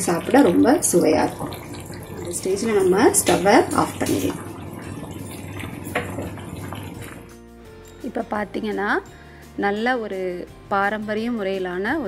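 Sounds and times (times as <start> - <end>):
gravy bubbling at a boil: 0.0 - 7.4.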